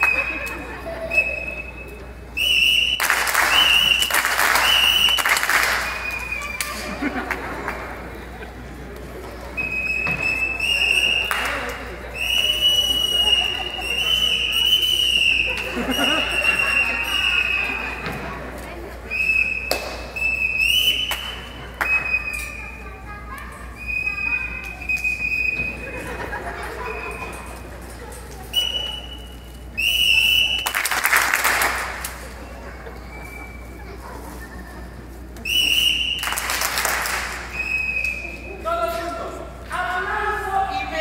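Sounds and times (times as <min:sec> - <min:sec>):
whistle blowing high notes: 0:00.0 - 0:06.8, 0:09.6 - 0:11.3, 0:12.2 - 0:17.8, 0:19.1 - 0:22.7, 0:23.8 - 0:25.8, 0:28.5 - 0:30.8, 0:35.4 - 0:36.4, 0:37.5 - 0:38.6
audience applause: 0:03.0 - 0:08.0, 0:30.5 - 0:32.2, 0:36.2 - 0:37.5.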